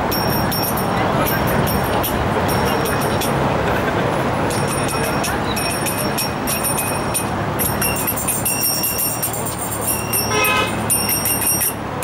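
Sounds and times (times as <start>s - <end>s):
traffic running: 0.0s - 12.0s
people talking: 0.3s - 12.0s.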